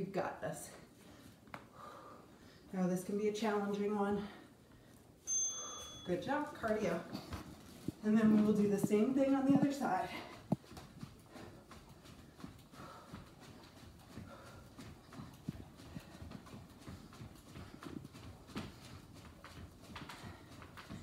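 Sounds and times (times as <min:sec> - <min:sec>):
footsteps jogging on wooden floor: 0:06.2 - 0:21.0.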